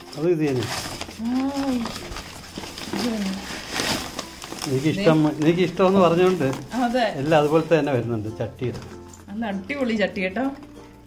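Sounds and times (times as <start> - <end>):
background music: 0.0 - 11.0
woman speaking: 9.3 - 10.6.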